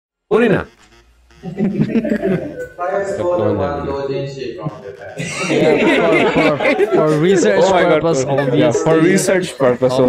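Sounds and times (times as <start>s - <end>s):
men talking: 0.3s - 0.7s, 1.4s - 10.0s
men chuckling: 1.4s - 2.8s, 4.8s - 10.0s.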